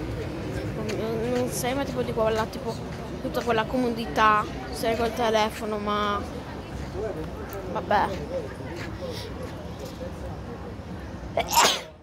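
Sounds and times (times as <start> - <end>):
crowd chatter: 0.0 - 12.0
boy sneezing: 11.4 - 12.0.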